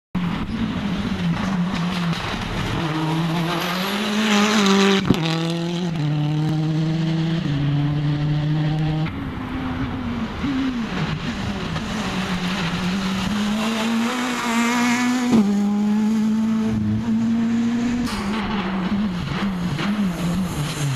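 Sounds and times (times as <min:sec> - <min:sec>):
rally car engines at speed: 0:00.2 - 0:20.9
sharp pop: 0:18.0 - 0:20.0.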